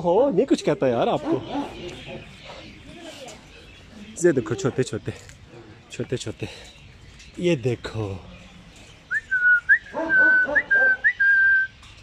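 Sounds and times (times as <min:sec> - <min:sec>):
person whistling: 0:09.1 - 0:11.7
dogs whining yelps: 0:09.8 - 0:11.4.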